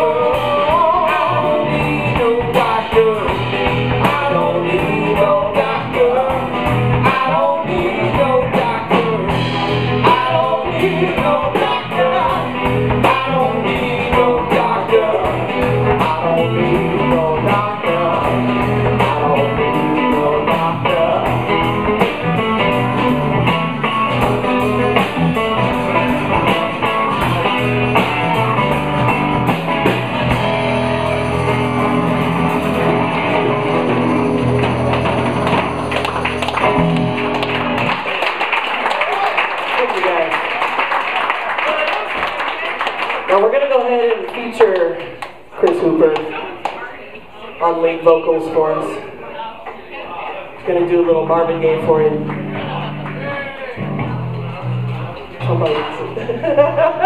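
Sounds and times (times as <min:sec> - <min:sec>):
drum kit: 0:00.0 - 0:38.2
bass guitar: 0:00.0 - 0:39.3, 0:50.7 - 0:57.0
electric guitar: 0:00.0 - 0:39.3, 0:51.4 - 0:57.0.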